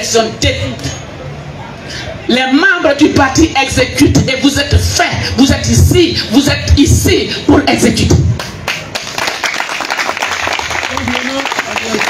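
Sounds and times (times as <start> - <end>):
audience clapping: 8.4 - 12.0.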